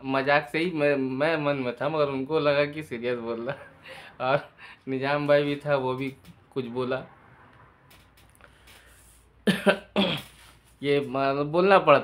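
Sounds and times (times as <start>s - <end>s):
man laughing: 3.3s - 4.6s
man talking: 4.2s - 7.1s, 10.8s - 12.0s.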